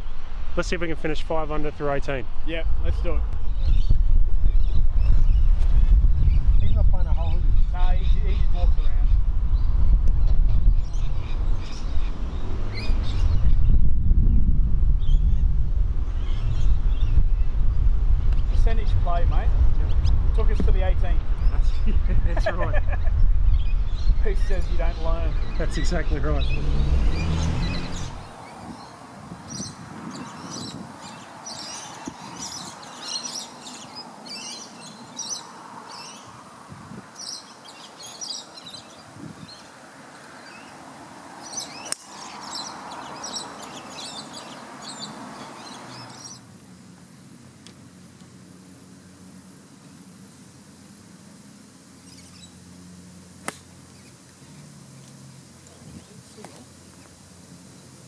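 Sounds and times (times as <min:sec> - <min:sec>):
birds chirping: 0:00.0 - 0:14.4, 0:15.0 - 0:58.0
golf club striking ball: 0:53.4 - 0:53.8.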